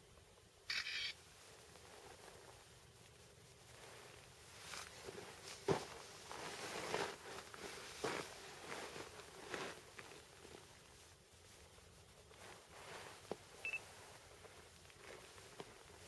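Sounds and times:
rustling and handling noise: 0:00.0 - 0:16.0.

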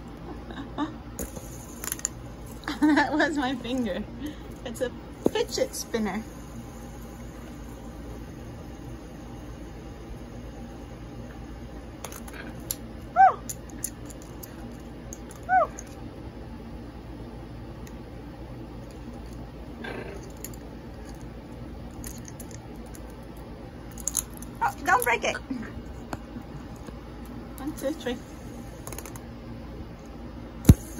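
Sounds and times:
faint room hum: 0:00.0 - 0:30.9.

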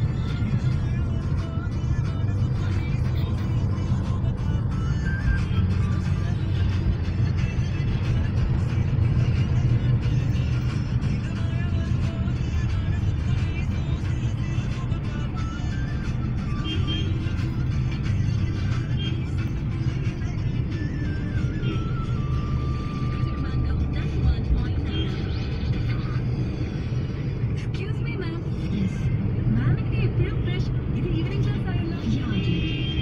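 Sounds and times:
car driving rumble: 0:00.0 - 0:33.0.

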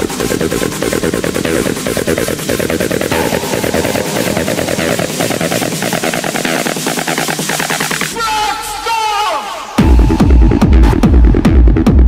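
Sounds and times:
rapid techno percussion roll: 0:00.0 - 0:08.2.

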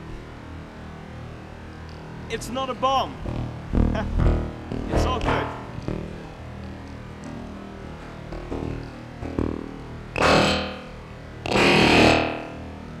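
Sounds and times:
distorted synthesizer drone: 0:00.0 - 0:13.0.

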